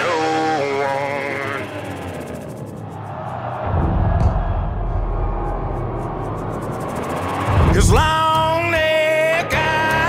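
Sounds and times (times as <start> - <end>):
rising pitch sweep: 0.0 - 9.3
loud low rumble: 1.3 - 8.7.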